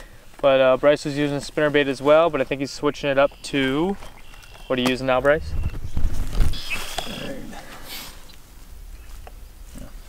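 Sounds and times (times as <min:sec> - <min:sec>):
wind rumble on microphone: 0:05.1 - 0:06.9.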